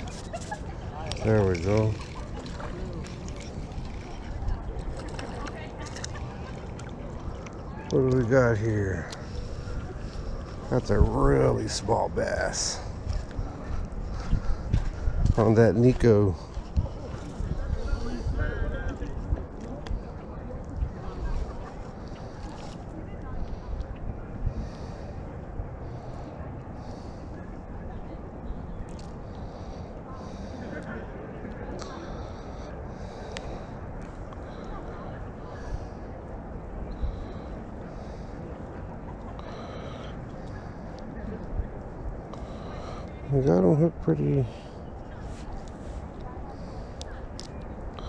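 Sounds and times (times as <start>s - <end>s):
wind rumble on microphone: 0.0s - 44.0s.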